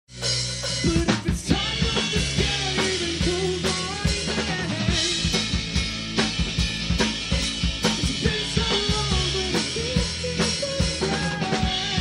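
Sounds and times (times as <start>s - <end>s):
rock band playing: 0.1s - 12.0s.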